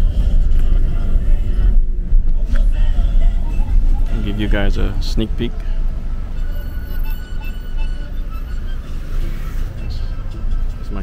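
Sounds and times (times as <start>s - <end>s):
car engine and tyres rumbling: 0.0s - 11.0s
music playing: 0.0s - 11.0s.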